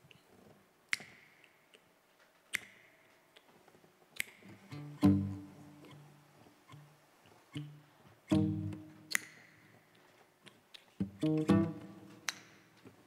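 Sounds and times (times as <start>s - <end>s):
classical guitar notes and chords: 4.6s - 6.2s, 7.5s - 9.2s, 11.0s - 12.3s.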